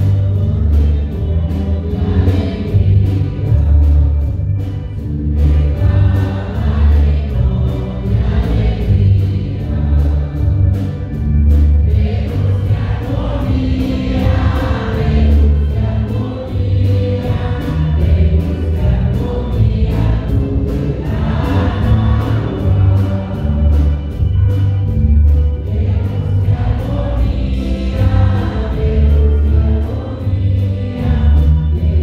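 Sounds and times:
choir singing a hymn: 0:00.0 - 0:32.0
deep steady bass: 0:00.0 - 0:32.0.

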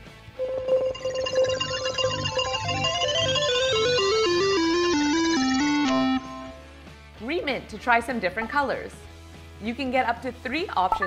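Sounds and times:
background music beat: 0:00.0 - 0:11.0
electronic beep: 0:00.4 - 0:03.6
electronic notes stepping down: 0:00.4 - 0:06.6.

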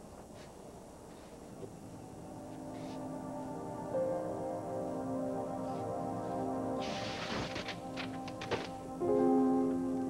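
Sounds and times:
soft background music: 0:00.2 - 0:10.0
paper poster rustling: 0:06.8 - 0:08.8.

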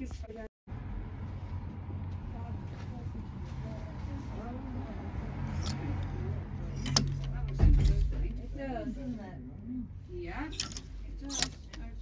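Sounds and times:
background chatter: 0:02.1 - 0:12.0
clothes hangers clicking on rail: 0:05.5 - 0:05.8, 0:06.7 - 0:08.0, 0:10.5 - 0:12.0.

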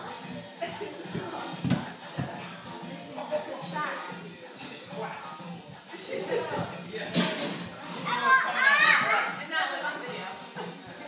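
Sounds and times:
children's excited cries and chatter: 0:08.0 - 0:09.7.

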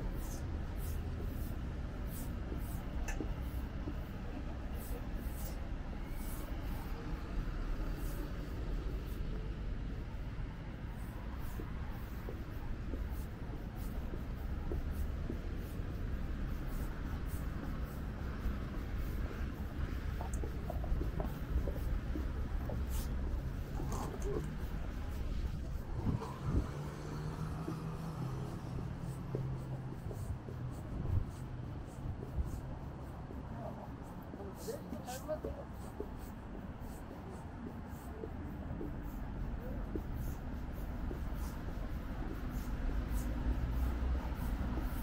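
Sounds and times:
low rumble of car traffic: 0:00.0 - 0:45.0.

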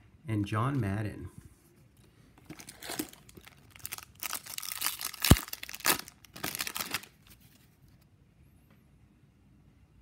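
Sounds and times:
foil wrapper crinkling: 0:02.4 - 0:07.6.

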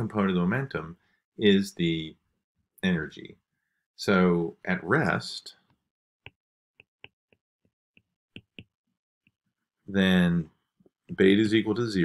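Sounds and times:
stylus tapping on glass screen: 0:08.0 - 0:08.8.

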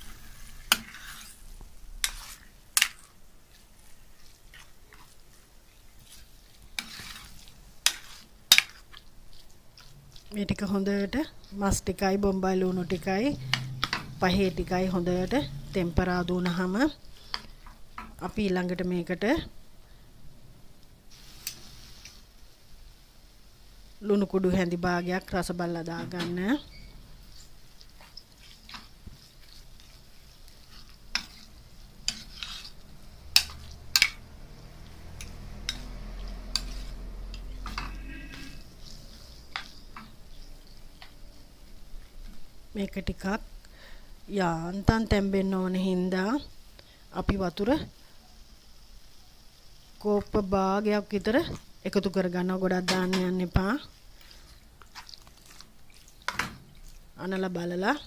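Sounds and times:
spoon stirring meat in pan: 0:00.0 - 0:18.5, 0:25.9 - 0:41.1, 0:52.6 - 0:57.8
soft sizzle: 0:00.0 - 0:58.0
spoon clacking on pan: 0:07.8 - 0:09.0, 0:13.5 - 0:14.1, 0:33.3 - 0:34.3, 0:56.2 - 0:56.6.

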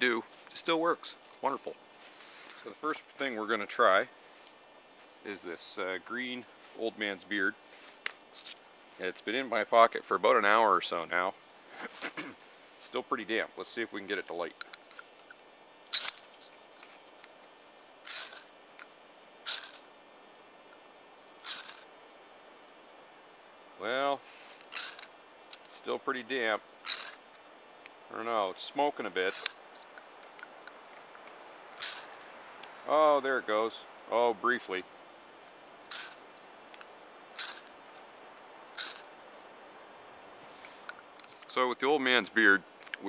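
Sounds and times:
rasping scrape of a fire striker: 0:15.9 - 0:17.0, 0:18.0 - 0:18.5, 0:19.5 - 0:19.8, 0:21.4 - 0:21.8, 0:24.3 - 0:25.1, 0:35.9 - 0:36.2, 0:37.4 - 0:37.7, 0:38.8 - 0:39.1
ferro rod scraped with striker: 0:37.4 - 0:37.7.

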